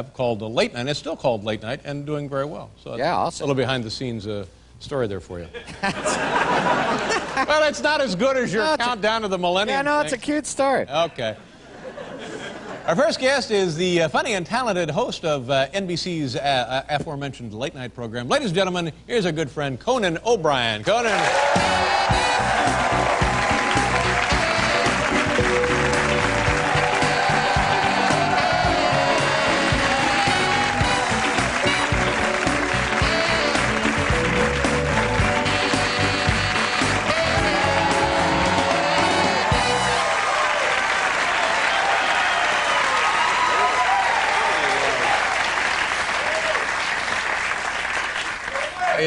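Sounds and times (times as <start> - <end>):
audience applauding and cheering: 21.0 - 49.0
band music with bass and drums: 21.4 - 40.2.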